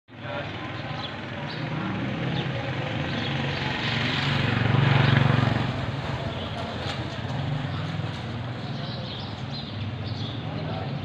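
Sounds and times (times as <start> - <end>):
motor engine passing by: 0.1 - 11.0.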